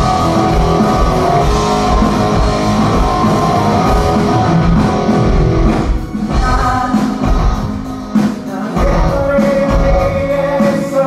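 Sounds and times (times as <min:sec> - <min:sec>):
distorted electric guitar: 0:00.0 - 0:11.0
live rock band playing: 0:00.0 - 0:11.0.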